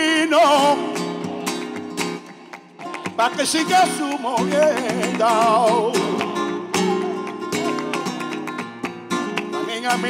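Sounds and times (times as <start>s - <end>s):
flamenco guitar: 0.0s - 10.0s
rhythmic handclaps: 0.4s - 10.0s
person singing: 2.8s - 8.4s, 9.5s - 10.0s.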